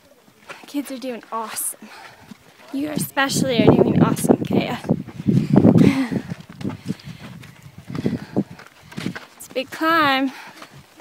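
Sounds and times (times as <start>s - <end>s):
footsteps on rocky trail: 0.0s - 11.0s.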